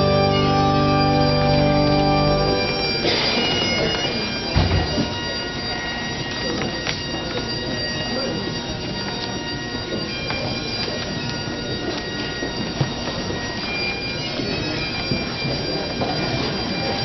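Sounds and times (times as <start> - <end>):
bagpipes playing slow tune: 0.0 - 17.0.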